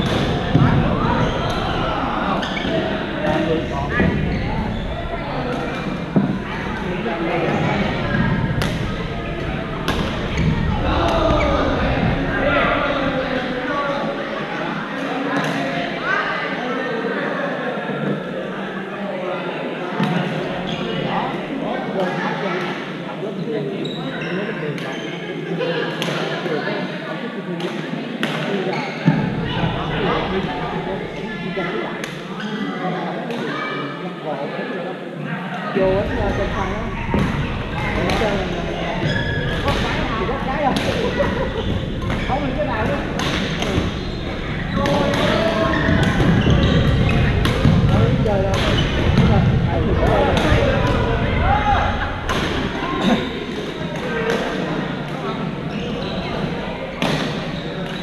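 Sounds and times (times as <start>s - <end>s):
babble of echoing voices: 0.0s - 58.0s
background chatter: 0.0s - 58.0s
shoe squeaks on court floor: 2.4s - 5.1s, 38.0s - 39.8s, 41.6s - 47.4s, 55.6s - 58.0s
rackets striking shuttlecock: 42.9s - 44.0s
racket hitting shuttlecock: 43.0s - 44.1s, 57.0s - 58.0s.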